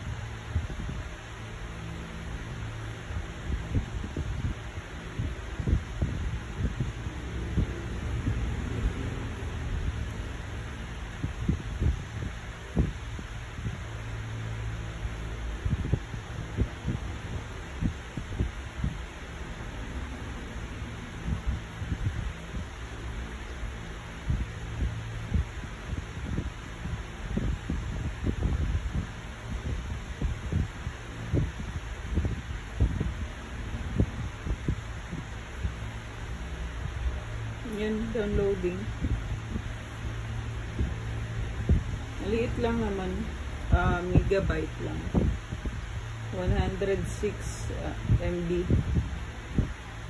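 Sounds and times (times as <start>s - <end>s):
low room hum: 0.0s - 50.0s.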